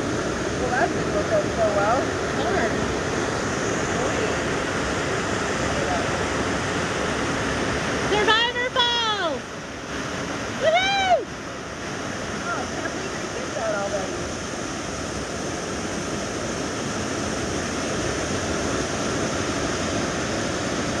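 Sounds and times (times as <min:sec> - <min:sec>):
waterfall pouring into a pool: 0:00.0 - 0:21.0.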